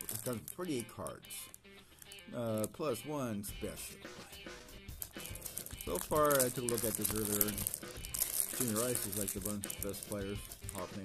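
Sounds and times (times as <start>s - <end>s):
plastic wrapper crinkling: 0.0s - 2.8s, 4.9s - 11.0s
faint background music: 0.0s - 11.0s.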